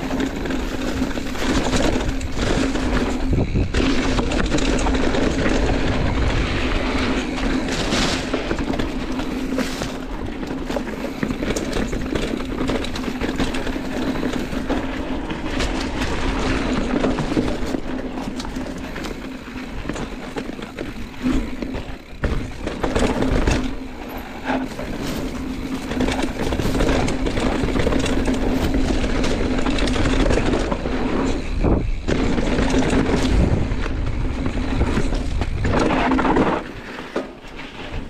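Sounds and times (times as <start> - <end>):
bike knocking and rattling: 0.0 - 38.0
tyres rolling over dirt and rocks: 0.0 - 38.0
wind on microphone: 2.0 - 4.6.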